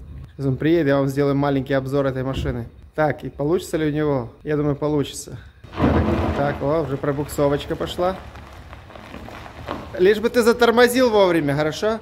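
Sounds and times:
tyres rolling over gravel: 5.6 - 12.0.

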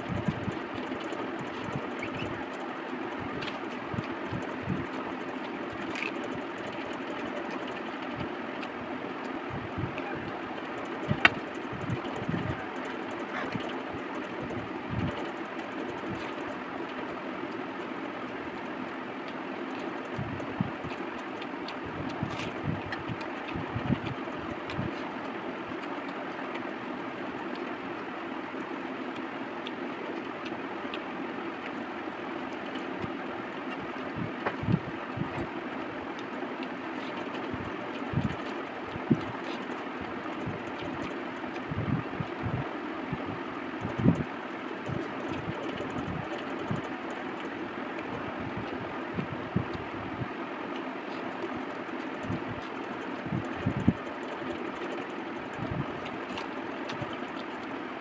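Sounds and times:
wet mixing food by hand: 0.0 - 58.0
chewing: 0.4 - 9.4, 10.0 - 42.4, 43.8 - 49.9, 50.6 - 58.0.

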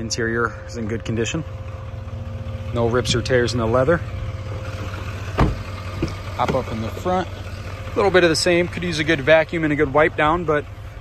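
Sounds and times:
truck engine idling: 0.0 - 11.0
truck door shutting: 4.8 - 7.0.

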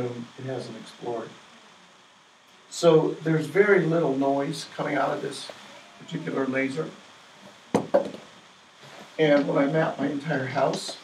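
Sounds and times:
sharp knocks: 7.7 - 8.3.

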